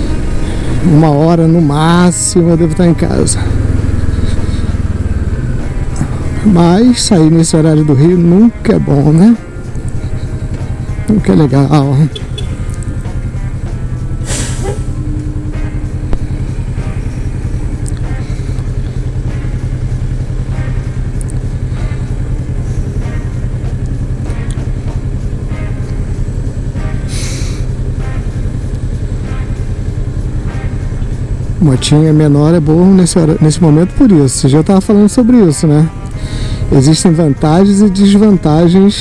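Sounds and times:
motorcycle engine idling: 0:00.0 - 0:39.0
short hisses: 0:14.2 - 0:15.0, 0:27.1 - 0:27.7.

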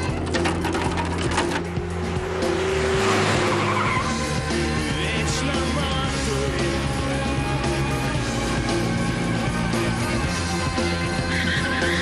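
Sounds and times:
music: 0:00.0 - 0:12.0
car tyres squealing: 0:00.1 - 0:05.1, 0:10.9 - 0:12.0.

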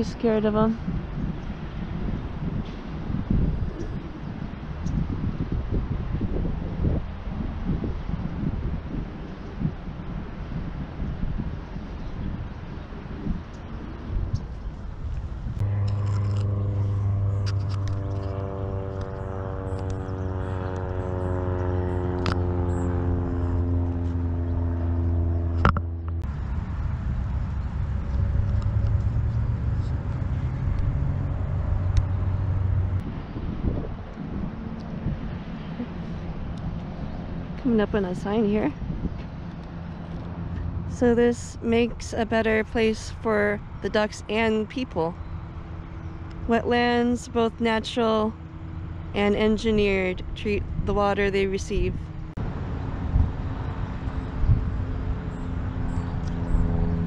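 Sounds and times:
engine-like drone: 0:00.0 - 0:57.0
low hum: 0:00.0 - 0:57.0
low rumble: 0:13.2 - 0:42.9.

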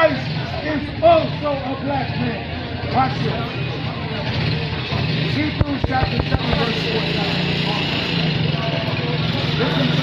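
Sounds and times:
faint voices: 0:02.6 - 0:10.0.

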